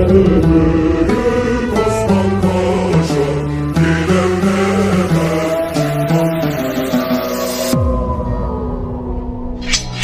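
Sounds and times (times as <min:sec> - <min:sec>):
melodic background music: 0:00.0 - 0:10.0.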